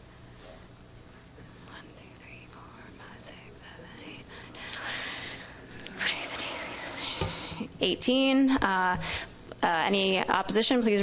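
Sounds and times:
low room hum: 0.0s - 11.0s
whispering and murmuring: 1.6s - 4.3s, 5.8s - 7.4s.

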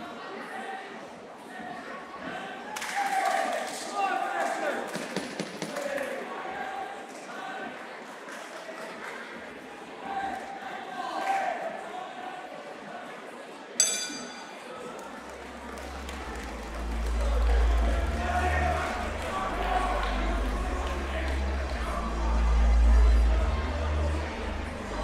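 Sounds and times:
people shouting in echoing hall: 9.8s - 13.2s, 14.5s - 25.0s
boxing ring bell: 13.8s - 14.7s
music with heavy bass: 16.0s - 25.0s.

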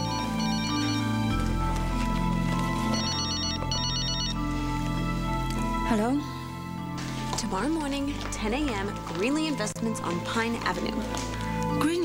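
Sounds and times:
cell phone ringtone trill: 0.0s - 1.3s, 2.9s - 4.4s
soft background music: 0.0s - 12.0s.

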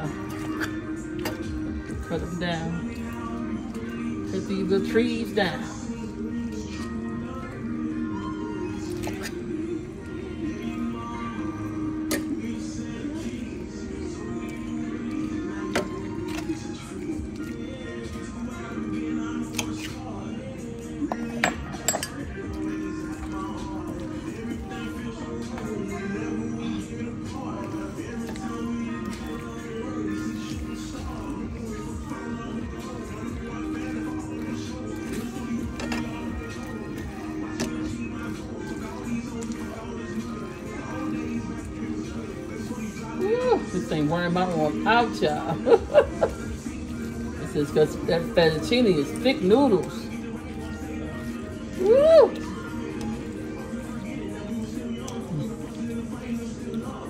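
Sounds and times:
background music: 0.0s - 57.0s.

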